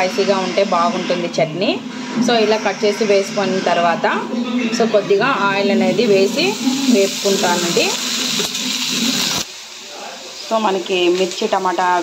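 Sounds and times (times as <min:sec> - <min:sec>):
woman talking: 0:00.0 - 0:08.0, 0:10.5 - 0:12.0.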